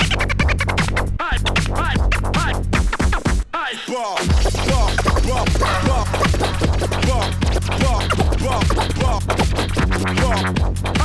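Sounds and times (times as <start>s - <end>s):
swooping scratching sounds: 0.0s - 3.4s, 4.0s - 11.0s
loud hard dance music: 0.0s - 11.0s.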